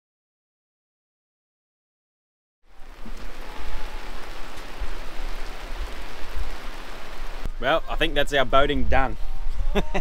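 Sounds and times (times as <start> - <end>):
rain on fabric awning: 2.6 - 7.6.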